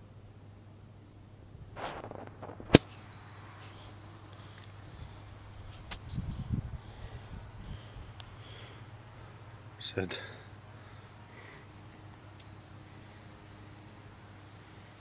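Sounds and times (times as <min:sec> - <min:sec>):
low rumble of handling noise: 0:01.1 - 0:09.4
insects chirring: 0:01.8 - 0:15.0.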